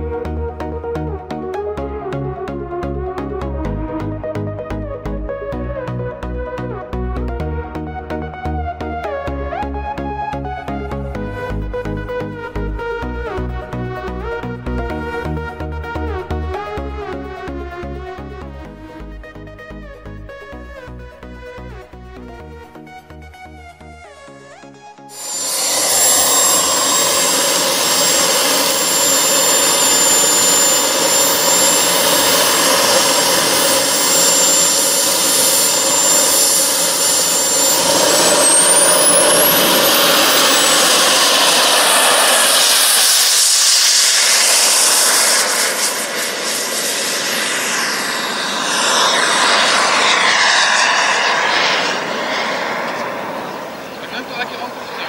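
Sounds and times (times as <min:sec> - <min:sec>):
model jet turbine whine: 0:25.1 - 0:55.0.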